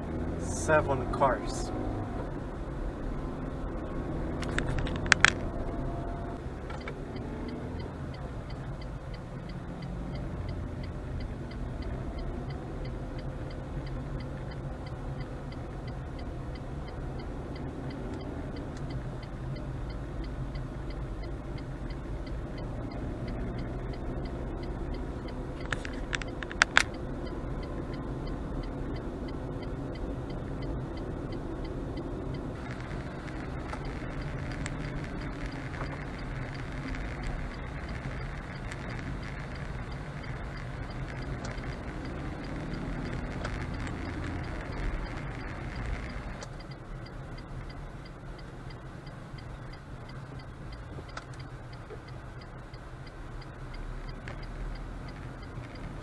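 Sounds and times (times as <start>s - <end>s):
car road and engine rumble: 0.0s - 56.0s
rapid faint ticking: 2.3s - 56.0s
sharp clicks: 4.3s - 5.8s, 6.6s - 56.0s.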